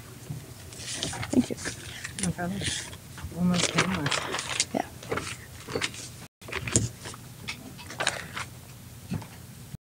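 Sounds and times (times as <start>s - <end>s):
papers rustling: 0.7s - 7.2s.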